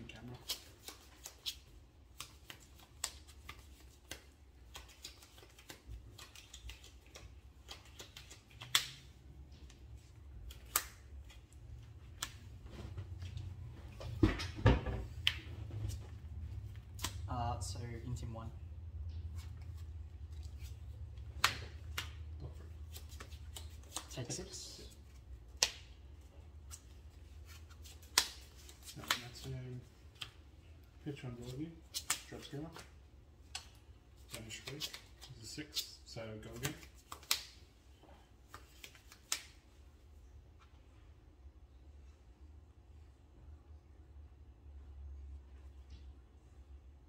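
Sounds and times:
playing cards shuffling: 0.2 - 14.2, 19.2 - 30.4.

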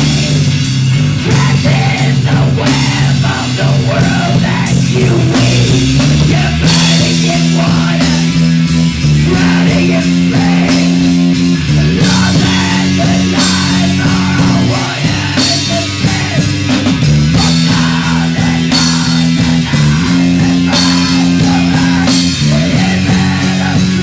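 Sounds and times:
distorted electric guitars and bass: 0.0 - 24.0
drum kit with crashing cymbals: 0.0 - 24.0
singer screaming: 1.2 - 8.5, 9.2 - 16.7, 17.3 - 24.0.

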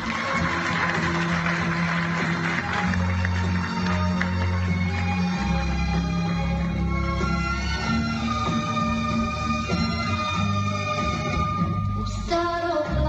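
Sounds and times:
backing track: 0.0 - 13.0.

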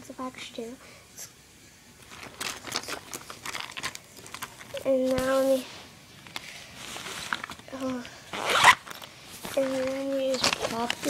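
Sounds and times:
plastic crinkling and clicking: 2.0 - 5.5, 6.2 - 11.0
person speaking: 4.7 - 5.8, 7.7 - 8.5, 9.4 - 11.0.

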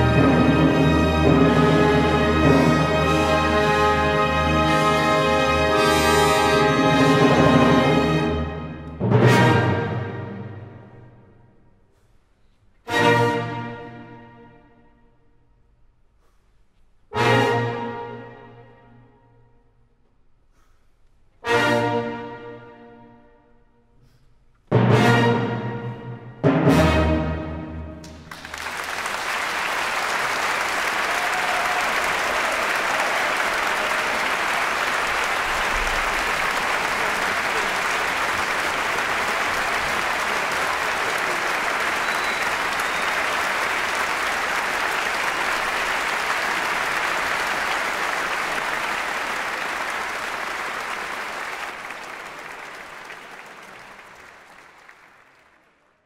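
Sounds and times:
large audience applauding: 28.0 - 56.0.

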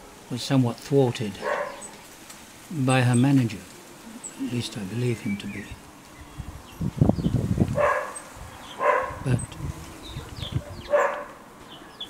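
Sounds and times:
small birds chirping: 0.4 - 12.0.

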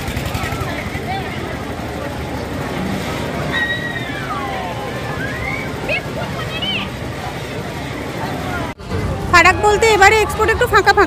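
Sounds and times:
indistinct crowd voices: 0.0 - 11.0
spinning ride running: 0.0 - 11.0
faint high shouts: 3.5 - 5.9.

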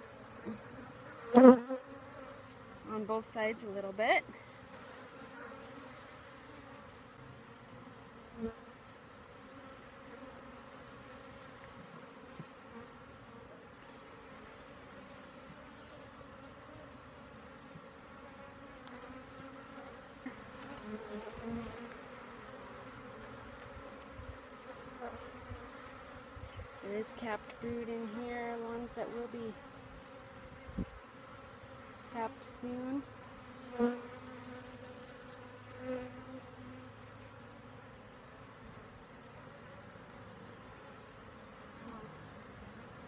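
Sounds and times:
honeybee colony humming: 0.0 - 43.0.

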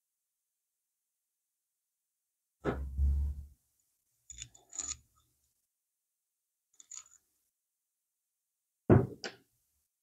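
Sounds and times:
small metal parts clinking: 4.3 - 5.3, 6.8 - 7.3.

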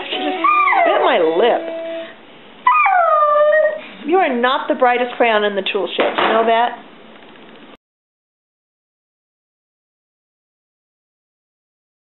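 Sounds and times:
dog howling: 0.4 - 1.4, 2.6 - 3.8.

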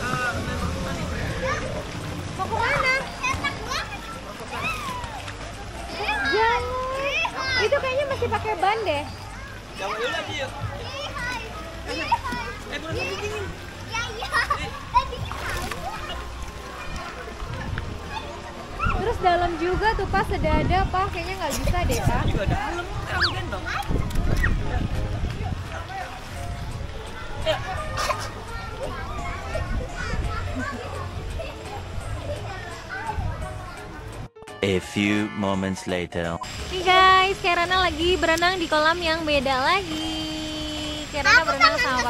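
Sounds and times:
children's voices: 0.0 - 20.1, 25.3 - 34.3, 39.7 - 42.0
pool water splashing: 0.0 - 42.0.

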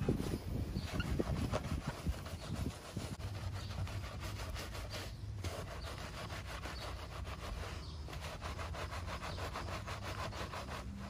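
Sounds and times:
brush scrubbing wet wheel: 0.0 - 11.0.

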